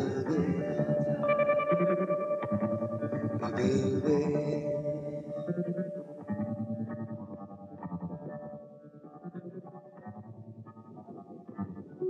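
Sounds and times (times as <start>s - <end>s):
distorted guitar plucked notes: 0.0s - 12.0s.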